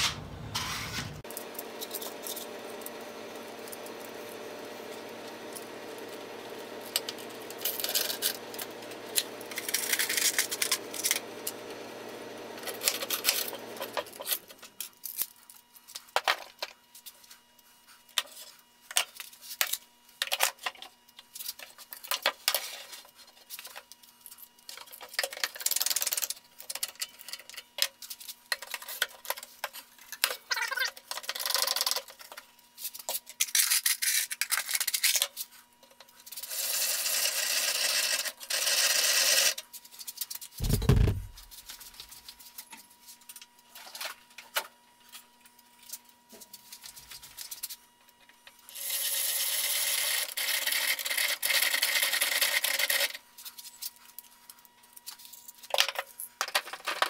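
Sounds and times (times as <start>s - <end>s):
rubbing or scraping on wood: 0.0s - 1.2s.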